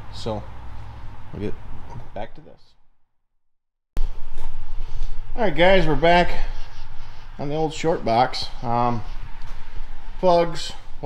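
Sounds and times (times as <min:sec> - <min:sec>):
low background hum: 0:04.0 - 0:11.0.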